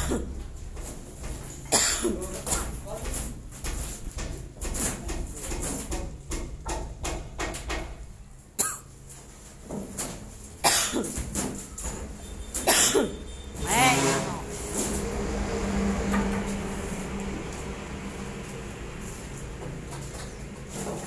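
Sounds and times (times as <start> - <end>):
person coughing: 0.0 - 0.3, 1.7 - 2.2, 8.6 - 8.9, 10.7 - 11.2, 12.7 - 13.2.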